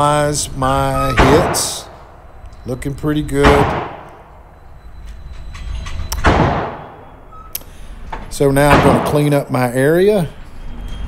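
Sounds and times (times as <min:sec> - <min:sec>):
gunshot with reverberant tail: 0:03.4 - 0:04.3, 0:06.2 - 0:07.2, 0:08.7 - 0:09.3.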